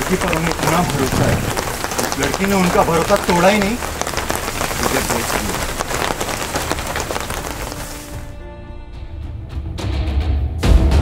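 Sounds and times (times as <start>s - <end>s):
steady rain pattering: 0.0s - 8.4s.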